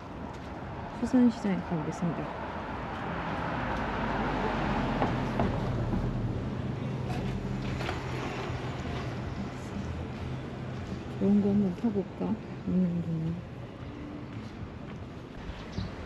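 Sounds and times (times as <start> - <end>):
vehicle passing: 0.8 - 11.9.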